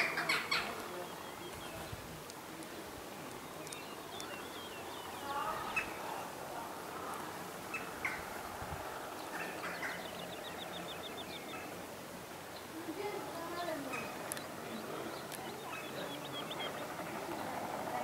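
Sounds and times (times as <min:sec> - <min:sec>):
small birds chirping: 0:00.0 - 0:18.0.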